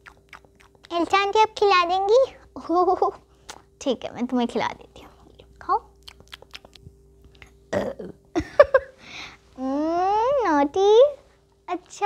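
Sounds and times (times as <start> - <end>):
child burping: 7.7 - 8.2.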